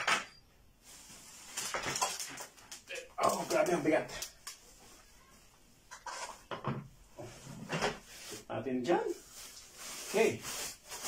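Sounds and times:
plastic wrapping crinkling: 0.8s - 5.0s, 8.1s - 11.0s
man speaking: 2.9s - 4.3s.

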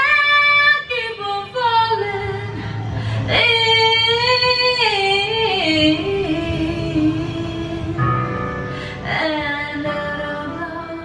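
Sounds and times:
backing track music: 0.0s - 11.0s
woman singing karaoke: 0.0s - 11.0s.

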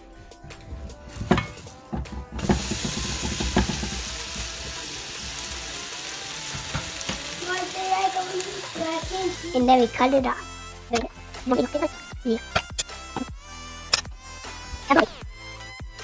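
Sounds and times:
spatula knocks and scrapes in pan: 1.1s - 4.2s
sandwich sizzling in frying pan: 1.1s - 10.0s.

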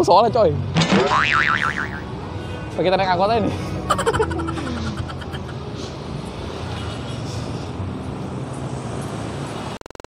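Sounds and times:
road noise: 0.0s - 10.0s
vehicle engines in slow traffic: 2.0s - 9.8s.

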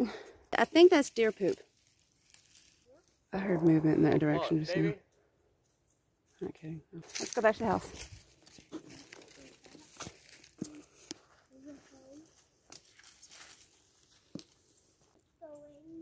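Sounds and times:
footsteps on dry leaves: 0.7s - 3.3s, 7.0s - 15.1s
twigs snapping: 1.8s - 2.9s, 7.1s - 11.2s, 12.7s - 14.6s
person speaking: 3.4s - 5.0s.

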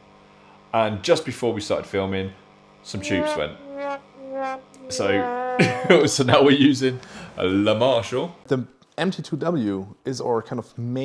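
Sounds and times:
man drawing out a word: 3.0s - 5.6s
man laughing: 4.9s - 6.3s.

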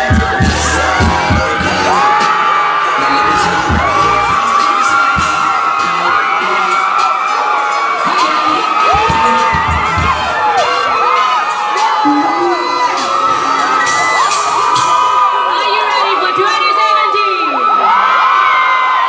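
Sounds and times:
bass-heavy music: 0.0s - 15.5s
crowd cheering and screaming: 0.0s - 19.0s.

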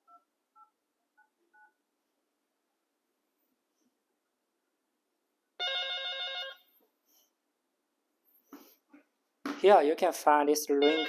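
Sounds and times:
telephone trilling ring: 5.6s - 6.7s, 10.8s - 11.0s.

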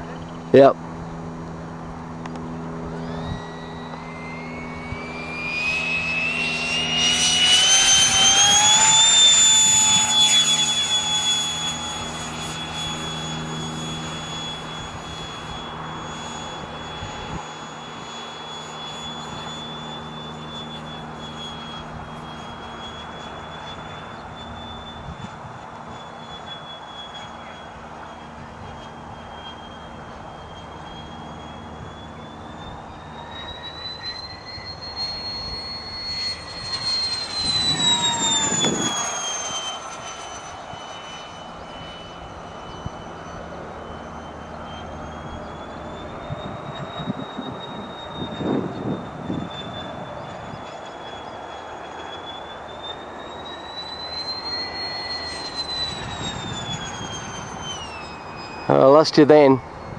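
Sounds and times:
electric jet fan whine: 0.0s - 59.9s.

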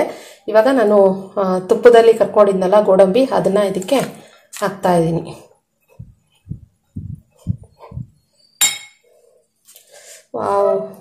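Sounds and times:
sharp clink: 8.6s - 9.0s.

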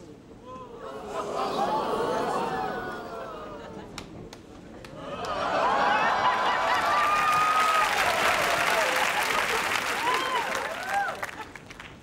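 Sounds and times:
audience cheering and whooping: 0.5s - 4.0s, 5.0s - 11.6s.

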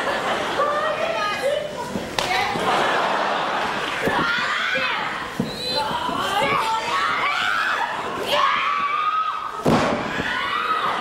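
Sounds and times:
women shouting and yelling: 4.0s - 11.0s.

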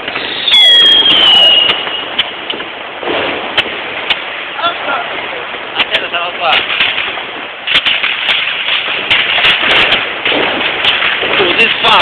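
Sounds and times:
firecrackers crackling: 0.0s - 12.0s
firework bangs: 0.0s - 12.0s.

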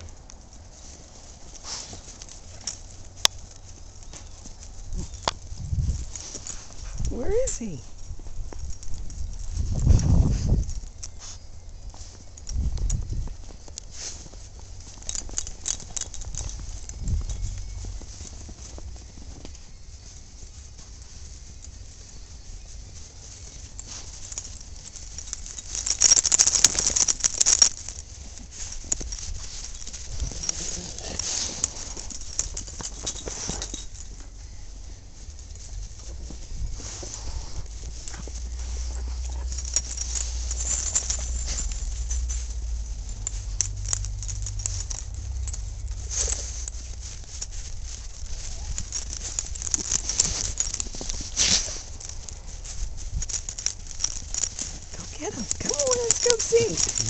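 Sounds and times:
footsteps crunching through snow: 0.0s - 57.0s
low rumble: 35.8s - 49.8s.

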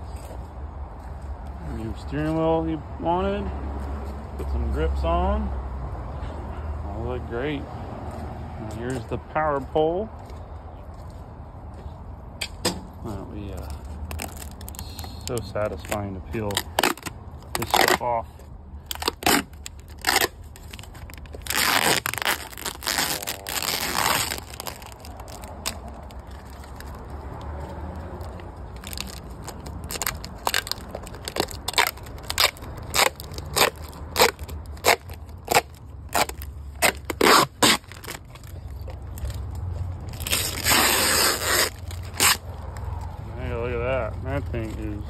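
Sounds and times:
plastic film peeling: 13.6s - 27.1s, 28.1s - 39.4s, 40.0s - 42.8s.

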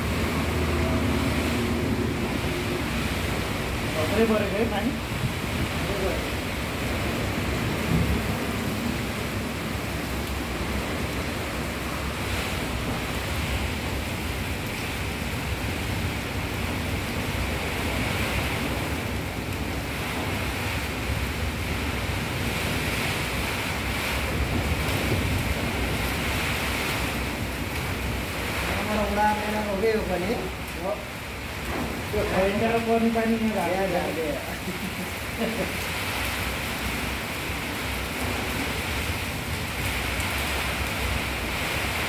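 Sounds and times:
heavy rain: 0.0s - 42.0s
strong wind: 0.0s - 42.0s.

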